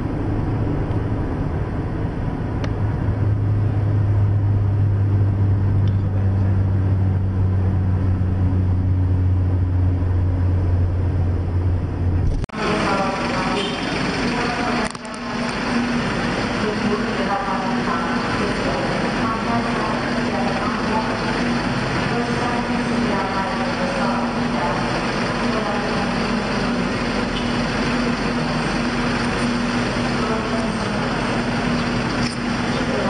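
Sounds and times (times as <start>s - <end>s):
bus engine idling: 0.0s - 33.0s
indistinct chatter: 12.6s - 33.0s.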